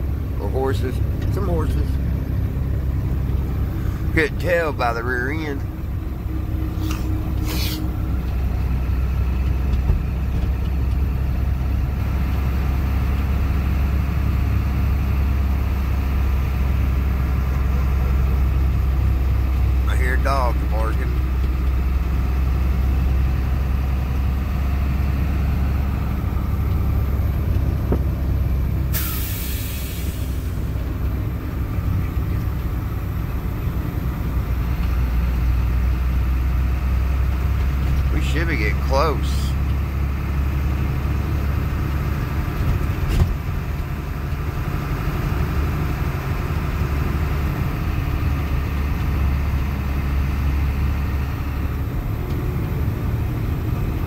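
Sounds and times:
truck engine droning: 0.0 - 54.0
short hiss: 6.8 - 7.9
sliding squeak-like tone: 6.8 - 7.9.

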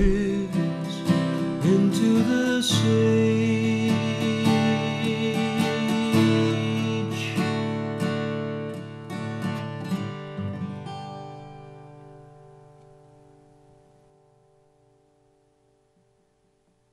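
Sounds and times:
acoustic guitar strumming: 0.0 - 16.3.

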